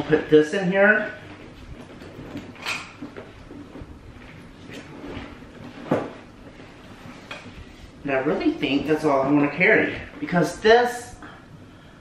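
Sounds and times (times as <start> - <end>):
bag handling noise: 1.3 - 7.6.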